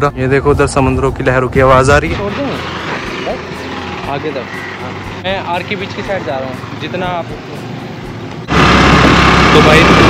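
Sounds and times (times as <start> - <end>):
motorcycle engine rumbling: 1.8 - 10.0.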